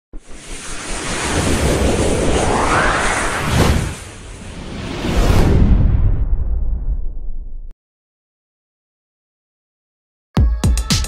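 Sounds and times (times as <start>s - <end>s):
wind-like whoosh: 0.2s - 7.7s
low rumble: 1.2s - 7.7s.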